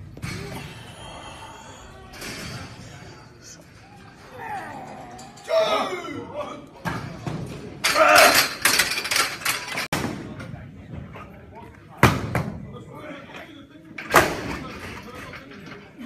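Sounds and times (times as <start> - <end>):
voices in a hall: 0.0 - 8.2, 10.0 - 16.0.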